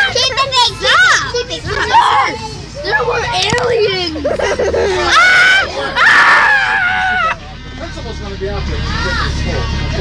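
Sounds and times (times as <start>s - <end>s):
children laughing and exclaiming: 0.0s - 8.1s.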